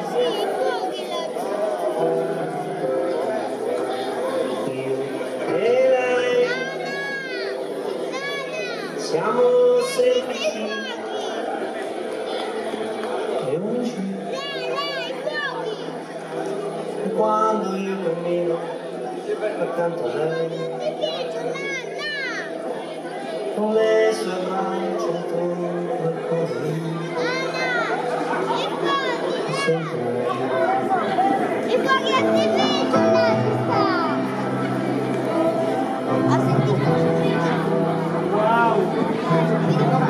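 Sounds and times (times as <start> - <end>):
high-pitched child's voice: 0.0 - 1.5, 6.3 - 9.0, 9.9 - 11.5, 14.3 - 16.0, 20.2 - 22.5, 27.1 - 30.4, 31.6 - 34.3
sustained piano chords: 0.0 - 10.4, 22.6 - 40.0
high wordless voice singing: 4.2 - 11.5, 13.4 - 16.0, 16.9 - 18.9, 23.5 - 34.4.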